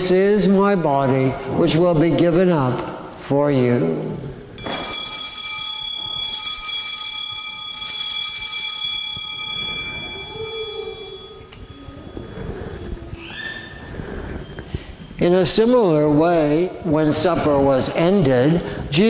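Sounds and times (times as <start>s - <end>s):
altar bells ringing: 4.6s - 13.0s.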